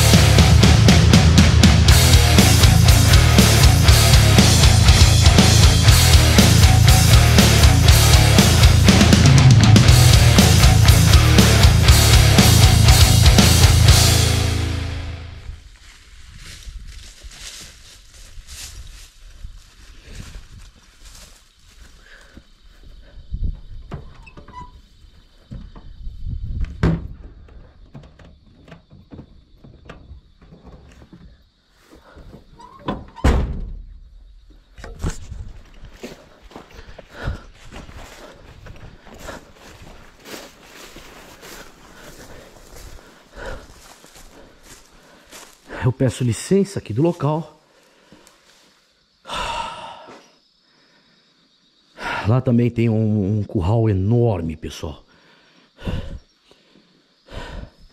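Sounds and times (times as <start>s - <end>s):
rock music: 0.0s - 15.5s
footsteps through dry grass: 12.8s - 23.0s, 35.0s - 45.9s, 47.6s - 49.0s
handheld camera thumps and rustles: 25.4s - 32.6s, 34.8s - 43.0s.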